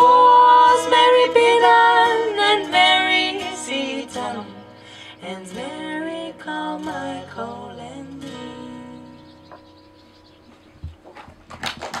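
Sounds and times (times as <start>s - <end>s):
hand clapping: 11.2s - 12.0s.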